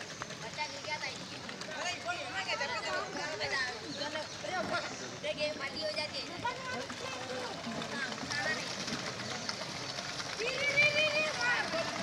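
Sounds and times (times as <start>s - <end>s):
children chattering and calling: 0.0s - 12.0s
paddle wheels splashing water: 0.0s - 12.0s.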